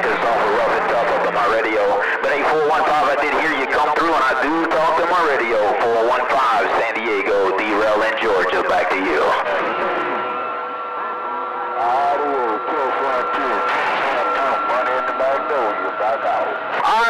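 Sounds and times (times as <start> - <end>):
faint garbled radio voices: 0.0 - 17.0.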